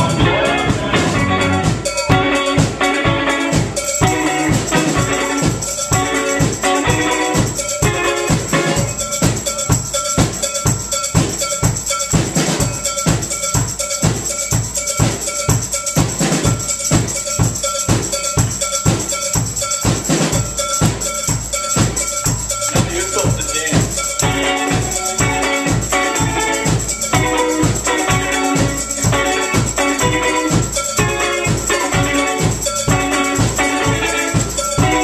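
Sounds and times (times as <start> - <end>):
drum kit beat: 0.0 - 35.0
live band playing: 0.0 - 35.0
tambourine shaken: 0.0 - 35.0.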